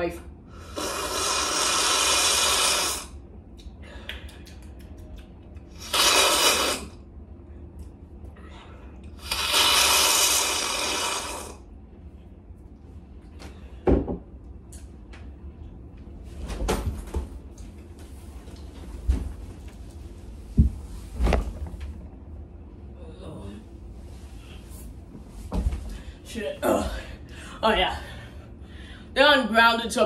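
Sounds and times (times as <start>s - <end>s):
low room hum: 0.0s - 30.0s
loud slurp from a mug: 0.7s - 3.1s, 5.8s - 6.9s, 9.2s - 11.6s.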